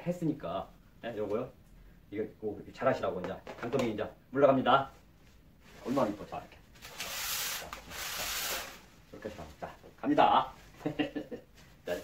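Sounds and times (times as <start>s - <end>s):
plastic wrap rustling under hands: 5.6s - 9.7s.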